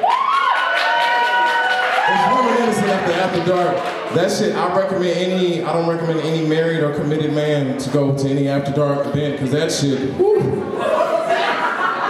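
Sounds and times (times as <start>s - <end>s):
audience whooping: 0.0s - 5.1s.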